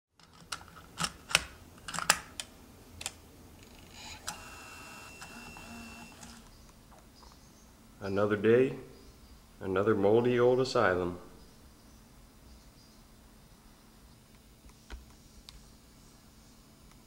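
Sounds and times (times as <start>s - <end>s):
motor whirring with high whine: 3.9s - 6.5s.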